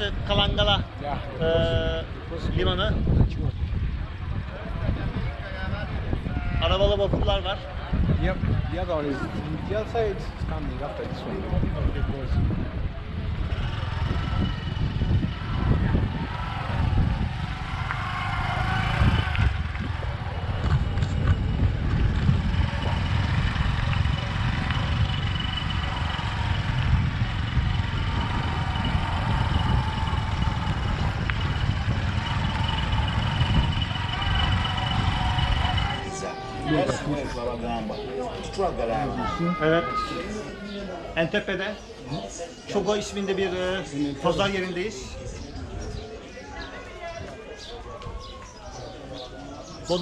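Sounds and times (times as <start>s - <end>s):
wind rushing over microphone: 0.0s - 37.6s, 42.9s - 50.0s
motorcycle engine rumbling: 0.0s - 39.0s.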